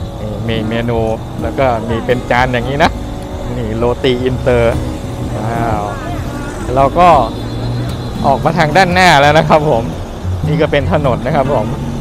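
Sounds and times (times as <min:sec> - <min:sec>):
man speaking: 0:00.0 - 0:11.8
road traffic hum: 0:00.0 - 0:12.0.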